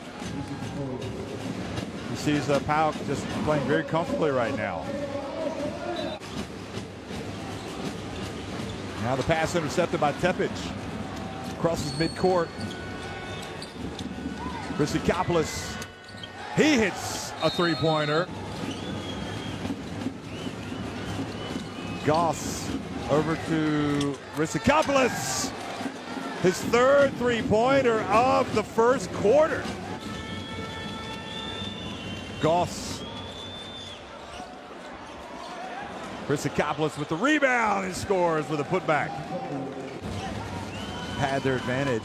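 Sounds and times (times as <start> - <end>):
crowd voices: 0.0 - 42.0.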